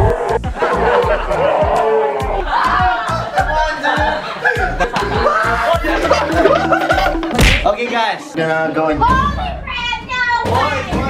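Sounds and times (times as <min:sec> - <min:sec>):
children shrieking and laughing: 0:00.2 - 0:07.4.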